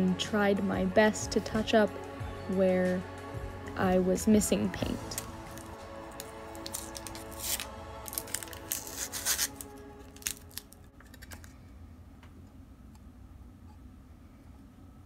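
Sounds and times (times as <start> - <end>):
background music: 0.0 - 11.6
plastic film crinkling and tearing: 4.9 - 11.6.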